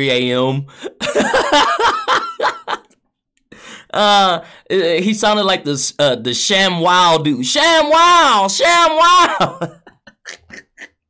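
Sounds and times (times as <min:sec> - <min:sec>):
man laughing: 0:00.8 - 0:02.9, 0:09.0 - 0:11.0.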